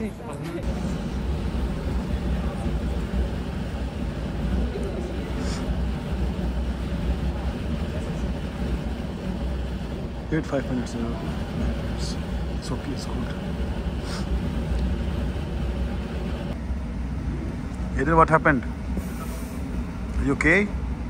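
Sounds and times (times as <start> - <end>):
gas flame burning: 0.6 - 21.0.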